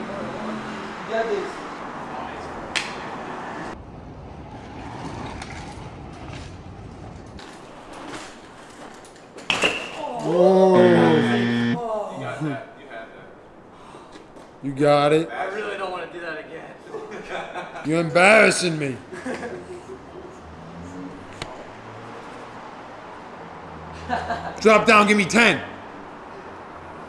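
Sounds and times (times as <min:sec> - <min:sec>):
men shouting: 0:10.5 - 0:11.8.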